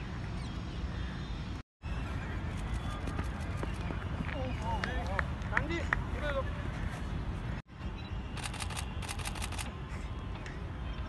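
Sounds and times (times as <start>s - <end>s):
sharp clicks: 8.4s - 9.7s.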